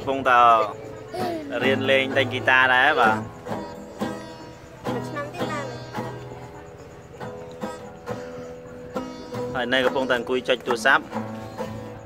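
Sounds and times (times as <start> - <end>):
acoustic guitar strums: 0.0 - 12.0.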